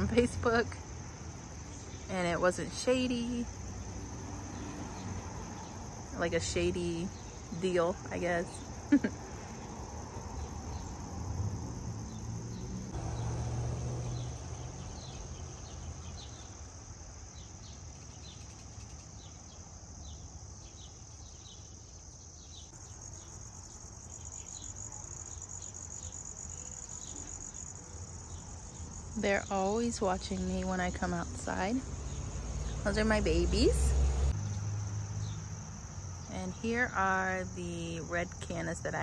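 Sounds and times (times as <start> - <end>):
insect trilling: 14.0 - 34.5.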